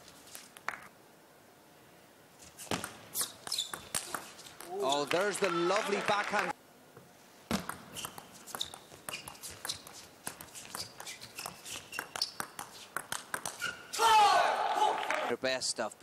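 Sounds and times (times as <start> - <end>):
table tennis ball clicking: 7.6 - 13.7.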